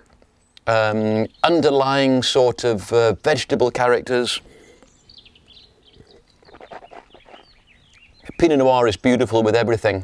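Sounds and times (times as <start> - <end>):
high bird chirps: 4.8 - 8.5
mouth sounds sipping wine: 5.9 - 7.6.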